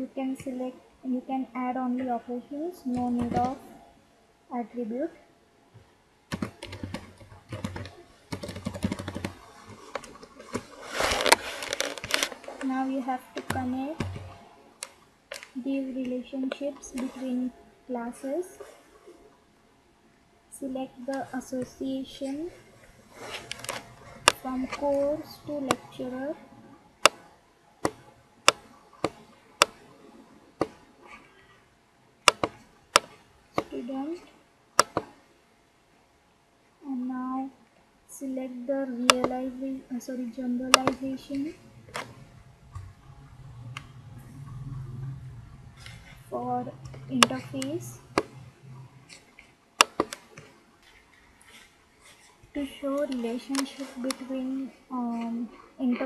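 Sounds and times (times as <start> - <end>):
typing on computer keyboard: 6.3 - 10.1
computer mouse clicking: 6.3 - 10.7, 32.3 - 33.7, 40.7 - 42.1, 49.8 - 50.5.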